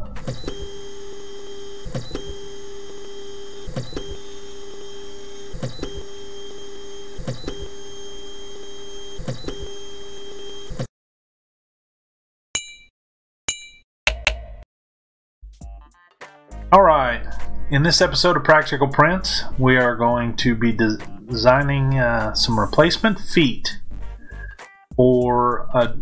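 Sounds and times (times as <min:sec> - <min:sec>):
stepper motors whining: 0:00.0 - 0:10.9.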